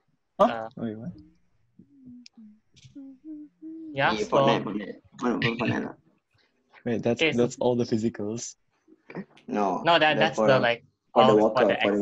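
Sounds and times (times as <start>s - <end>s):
faint voices over video call: 0.4s - 1.2s, 6.9s - 8.5s, 9.1s - 12.0s
person saying what: 3.0s - 5.9s, 11.2s - 12.0s.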